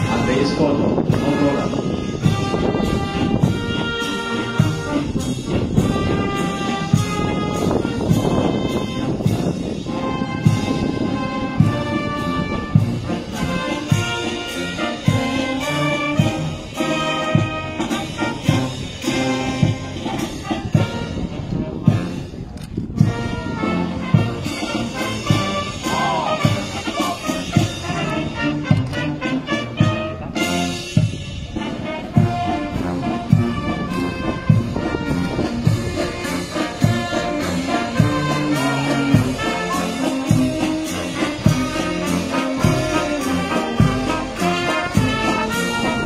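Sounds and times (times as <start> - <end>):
marching band playing: 0.0 - 46.0.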